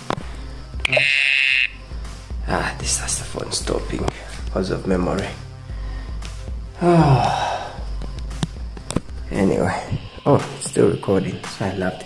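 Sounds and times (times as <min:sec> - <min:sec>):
buzzy smartphone alert tone: 0:00.8 - 0:01.8.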